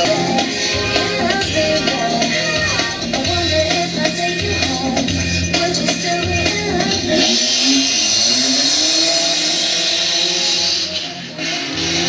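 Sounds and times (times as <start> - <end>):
race car engines revving: 0.0 - 12.0.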